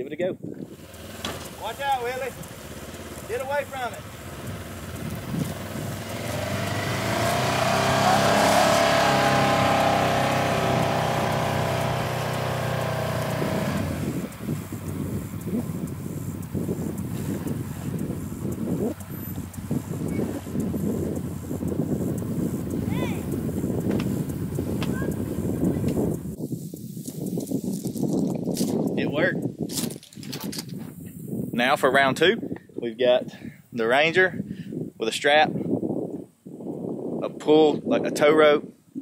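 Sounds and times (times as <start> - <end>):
low outdoor rumble: 0.7 - 26.4
vehicle engine running hard: 0.7 - 26.4.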